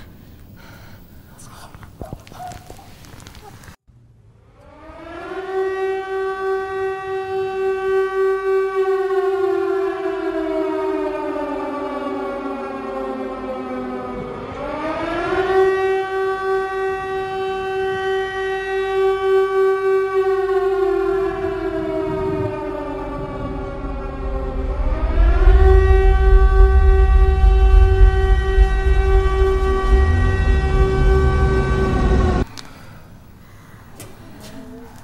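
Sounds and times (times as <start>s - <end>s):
air-raid siren wailing: 4.4s - 32.5s.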